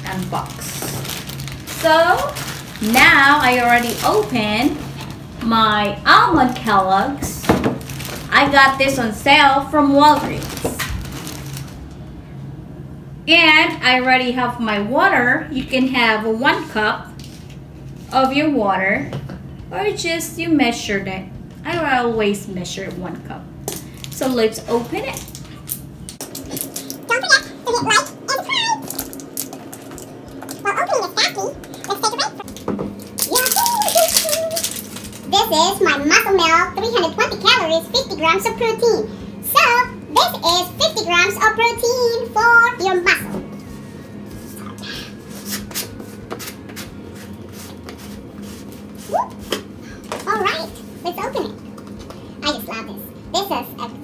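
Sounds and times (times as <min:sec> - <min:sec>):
low steady hum: 0:00.0 - 0:54.0.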